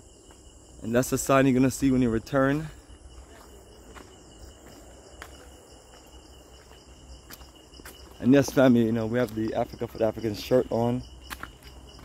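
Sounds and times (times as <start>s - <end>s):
footsteps on stone path: 0.0s - 12.0s
insects chorus: 0.0s - 12.0s.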